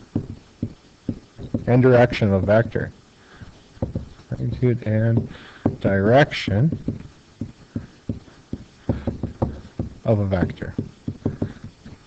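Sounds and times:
pen tapping on hard surface: 0.2s - 1.7s, 3.8s - 4.2s, 5.2s - 5.9s, 6.7s - 10.0s, 10.8s - 11.8s.

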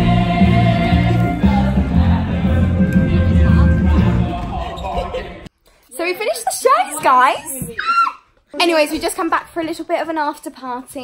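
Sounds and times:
stage music: 0.0s - 5.5s.

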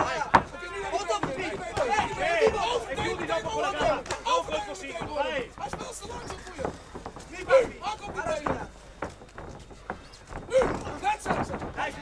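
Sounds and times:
people shouting: 0.0s - 8.7s, 10.4s - 12.0s
arena background noise: 0.0s - 12.0s
sharp knocks: 0.0s - 12.0s.

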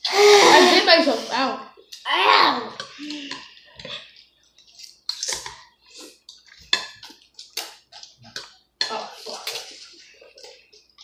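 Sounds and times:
people slurping noodle soup: 0.0s - 1.5s, 2.6s - 8.6s.

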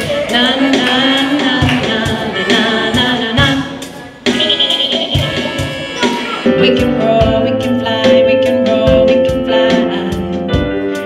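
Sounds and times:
group singing pop music: 0.0s - 10.5s
steady low drum beat: 0.0s - 10.9s.

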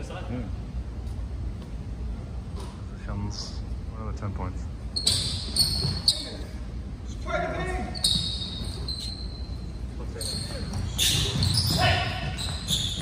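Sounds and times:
sneaker squeaks: 4.9s - 6.7s, 7.6s - 13.0s.

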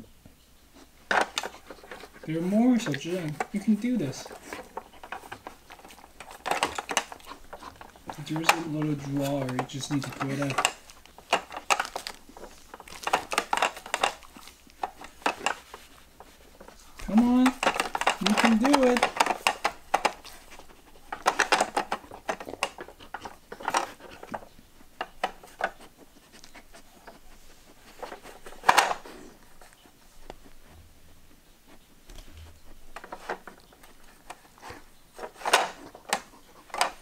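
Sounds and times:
plastic puzzle pieces clicking: 1.1s - 27.2s, 32.1s - 37.0s.

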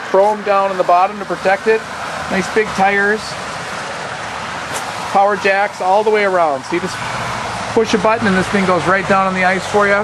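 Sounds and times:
man's voice: 0.0s - 3.4s, 5.1s - 7.0s, 7.7s - 10.0s
outdoor rushing hiss: 3.4s - 5.2s.

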